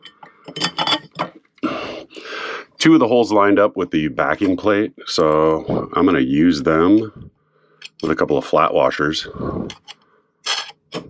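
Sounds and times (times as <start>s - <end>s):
bolts clinking on metal plate: 0.0s - 1.4s, 9.7s - 11.0s.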